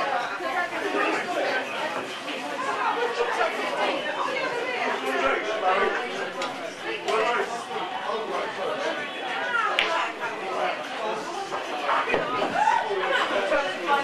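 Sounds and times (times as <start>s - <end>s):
background chatter: 0.0s - 14.0s.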